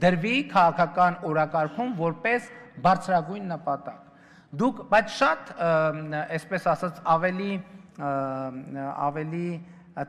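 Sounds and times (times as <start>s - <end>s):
man giving a speech: 0.0s - 10.0s.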